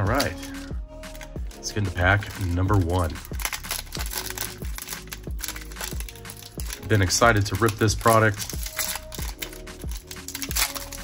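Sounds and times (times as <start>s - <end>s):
background music with a beat: 0.0s - 11.0s
foil wrapper crinkling and tearing: 0.0s - 11.0s.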